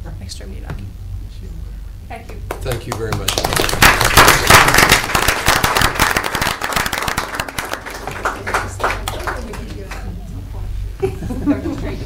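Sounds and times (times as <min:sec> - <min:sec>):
people applauding: 0:02.4 - 0:10.2.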